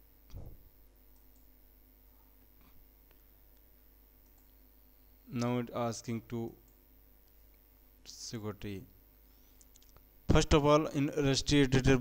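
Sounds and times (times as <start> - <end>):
computer mouse clicks: 0.3 - 1.5, 3.1 - 4.6.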